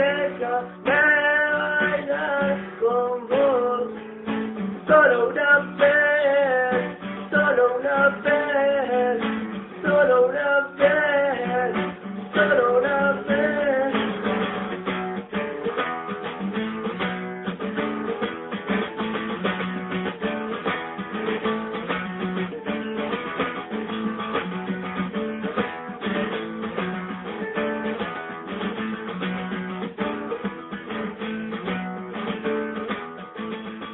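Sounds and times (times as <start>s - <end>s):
person singing: 0.0s - 4.0s, 4.8s - 14.5s
acoustic guitar strumming: 0.0s - 33.9s.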